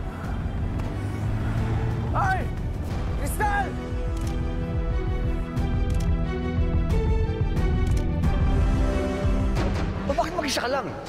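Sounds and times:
vehicle engine humming: 0.0 - 7.1
background music: 0.0 - 11.0.

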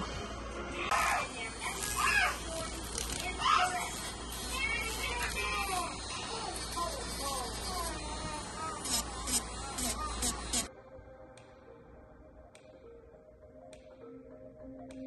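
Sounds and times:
electric nail drill grinding: 1.1 - 10.7.

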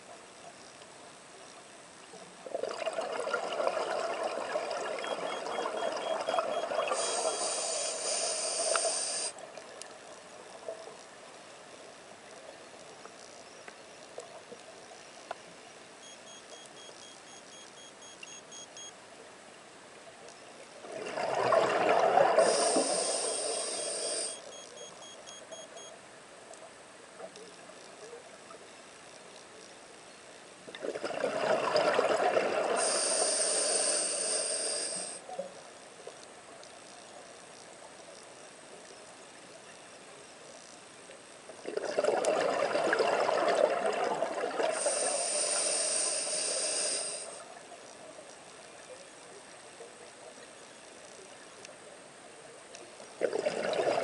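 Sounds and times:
bubbles rumbling and hissing: 2.3 - 10.9, 20.8 - 24.4, 30.7 - 35.5, 41.5 - 48.2, 53.1 - 54.0
diver exhaling through regulator: 7.0 - 9.4, 21.9 - 24.4, 44.7 - 47.4.

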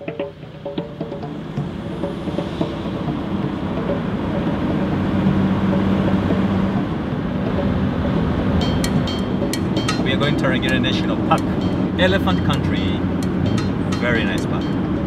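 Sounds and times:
vehicle engine rumble: 0.0 - 15.0.

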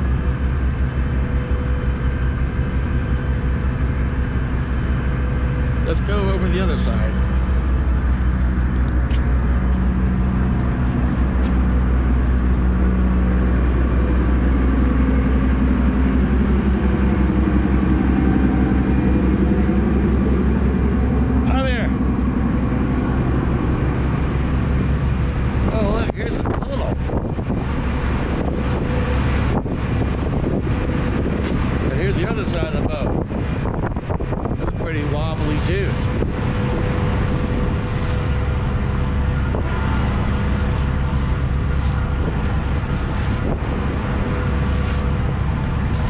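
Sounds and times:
low ship engine drone: 0.0 - 46.0
wind buffeting microphone: 0.0 - 46.0.

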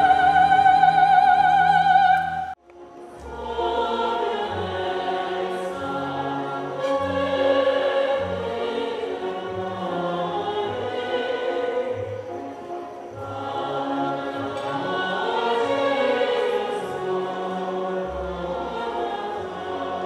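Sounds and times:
choir singing: 0.0 - 20.0
symphony orchestra: 0.0 - 20.0.

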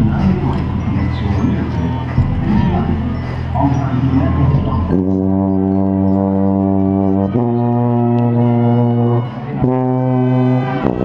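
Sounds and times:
marching band brass chords: 0.0 - 11.0.

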